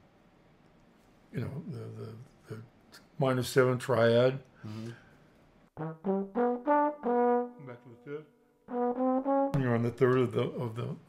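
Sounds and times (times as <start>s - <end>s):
slide trombone jazz phrase: 5.8s - 10.1s.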